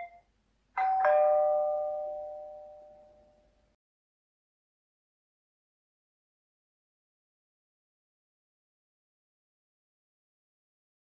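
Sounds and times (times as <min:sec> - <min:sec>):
two-note ding-dong chime: 0:00.8 - 0:03.4.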